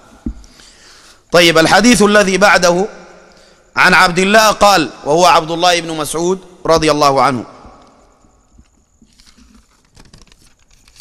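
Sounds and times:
book pages rustling: 8.7 - 11.0.

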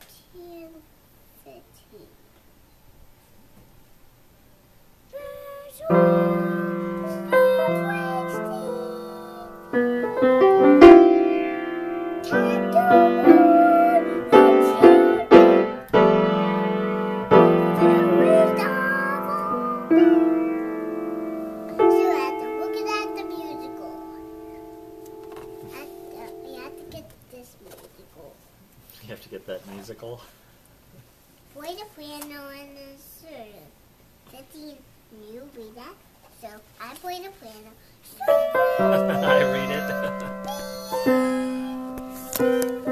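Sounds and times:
child singing: 5.1 - 10.3, 12.2 - 15.4, 17.6 - 20.1, 21.7 - 24.3, 36.4 - 42.4.

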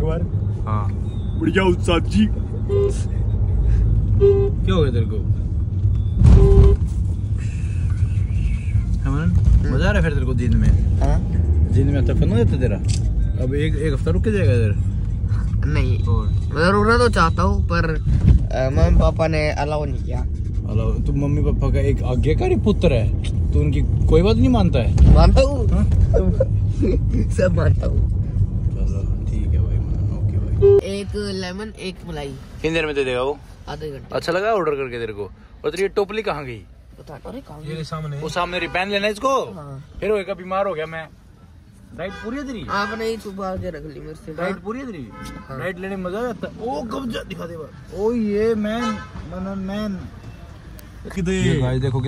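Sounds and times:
car rumble from inside cabin: 0.0 - 33.3
car horn honk: 2.6 - 3.2, 4.1 - 4.8, 6.2 - 7.0, 30.6 - 30.9, 42.0 - 43.4, 45.0 - 45.8, 48.6 - 49.4.

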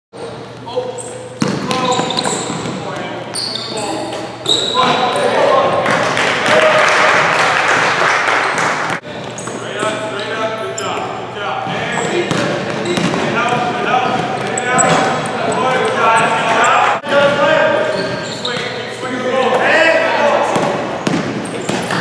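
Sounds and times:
basketball bouncing on wooden court: 1.4 - 2.8, 12.0 - 16.3, 20.6 - 22.0
players calling out: 8.5 - 22.0.

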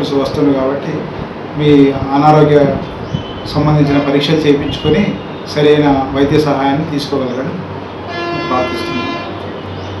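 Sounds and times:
horn steady tone: 3.8 - 5.6, 7.9 - 10.0.

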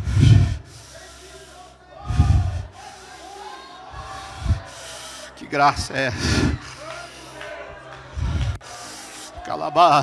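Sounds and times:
faint voices: 0.0 - 10.0
soft background music: 0.0 - 10.0
man speaking through microphone: 5.3 - 6.2.

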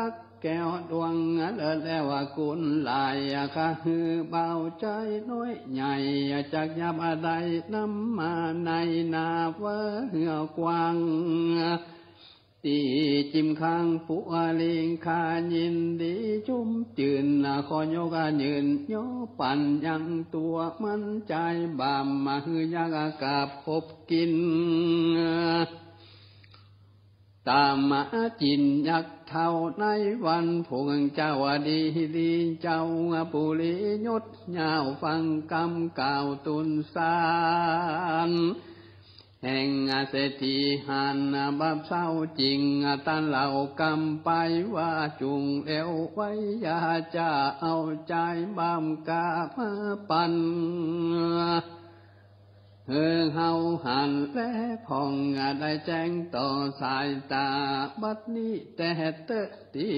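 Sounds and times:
man chanting: 0.0 - 12.0, 12.6 - 26.0, 27.4 - 38.7, 39.4 - 51.9, 52.9 - 59.9
faint low hum: 0.0 - 59.9.

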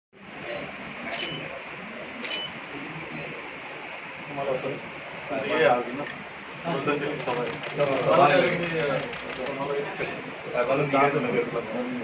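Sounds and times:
murmur of low voices: 0.2 - 12.0
high beep: 1.1 - 1.5.

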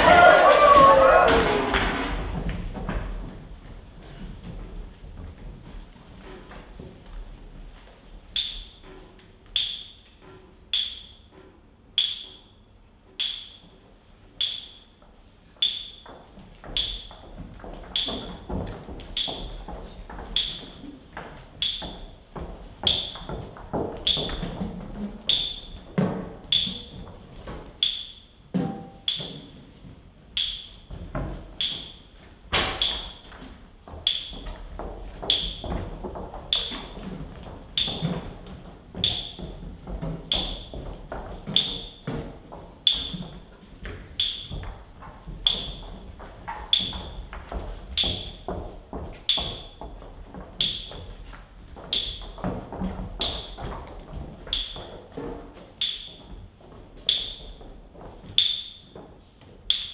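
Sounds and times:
metal buckets knocking on floor: 0.0 - 3.6, 28.5 - 29.6.

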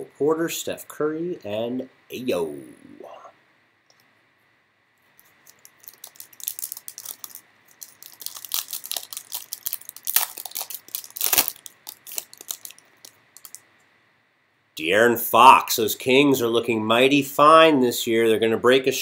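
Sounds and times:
foil wrapper tearing and crinkling: 5.4 - 13.6.

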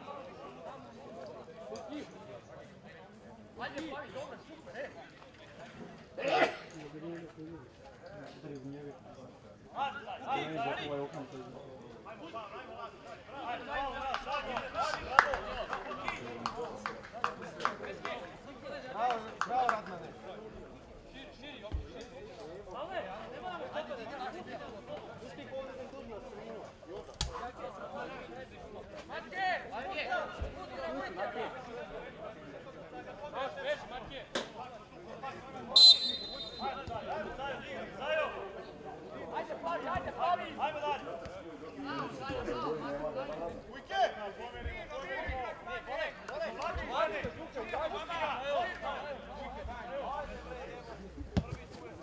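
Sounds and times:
people shouting and calling out: 35.2 - 50.8
referee's whistle blast: 35.7 - 36.9.

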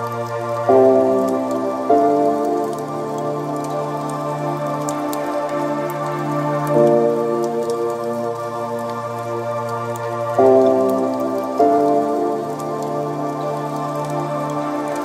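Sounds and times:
ambient music with held chords: 0.0 - 15.0.

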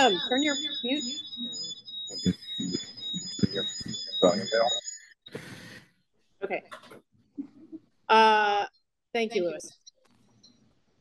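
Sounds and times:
garbled echoing speech: 0.0 - 4.8, 8.1 - 9.7
high-pitched feedback ringing: 0.0 - 5.2.

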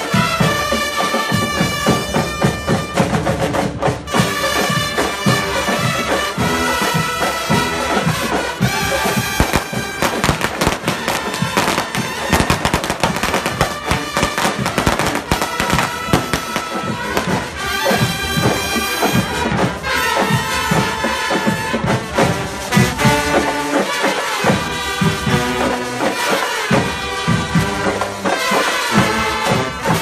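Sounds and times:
drum and cymbal hits: 0.0 - 30.0
wind instruments sustained notes: 4.1 - 30.0.

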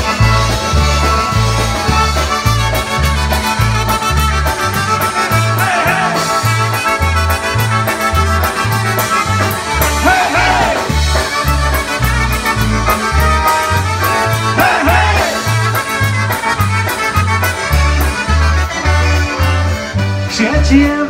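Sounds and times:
oom-pah bass: 0.0 - 21.0
trumpet melody: 0.0 - 21.0.

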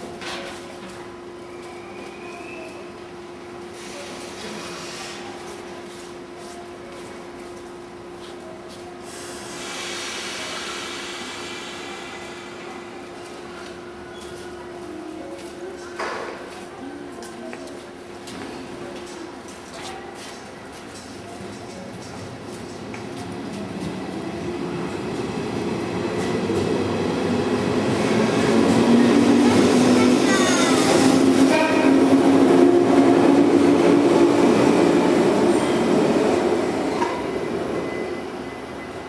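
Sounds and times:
electric train humming: 24.0 - 39.0.

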